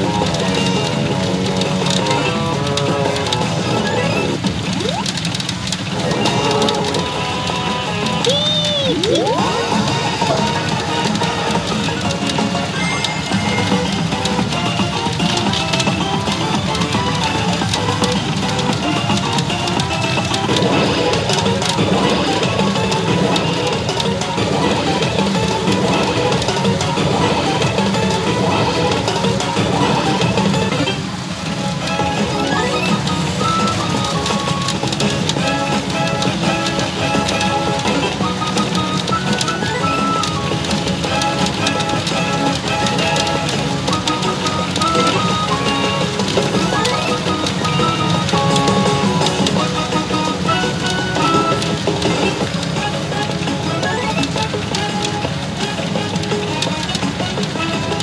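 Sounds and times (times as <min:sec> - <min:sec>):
machine music and effects: 0:00.0 - 0:58.0
pachinko machine din: 0:00.0 - 0:58.0
rapid clicking: 0:00.0 - 0:58.0.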